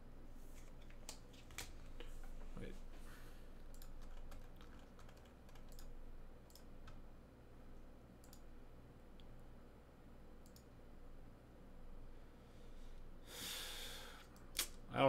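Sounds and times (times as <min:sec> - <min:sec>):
low steady hum: 0:00.0 - 0:15.0
computer keyboard typing: 0:03.7 - 0:07.0
mouse clicks: 0:08.2 - 0:08.5, 0:10.4 - 0:10.7.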